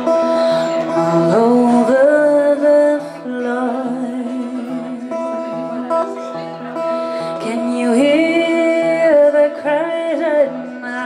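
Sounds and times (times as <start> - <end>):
acoustic guitar chords: 0.0 - 11.0
woman singing gliding line: 0.2 - 11.0.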